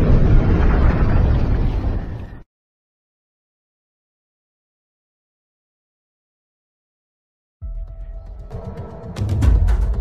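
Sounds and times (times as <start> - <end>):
loud rumbling explosion: 0.0 - 2.2.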